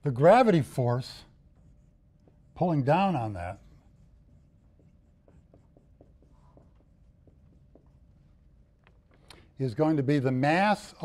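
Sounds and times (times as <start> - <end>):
marker scratching on whiteboard: 0.1 - 10.0.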